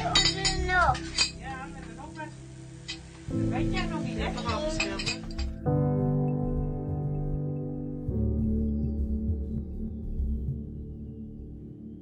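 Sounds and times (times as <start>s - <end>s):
cutlery clinking on dishes: 0.0s - 1.4s, 4.4s - 5.5s
background music: 0.0s - 12.0s
person speaking: 3.4s - 5.2s.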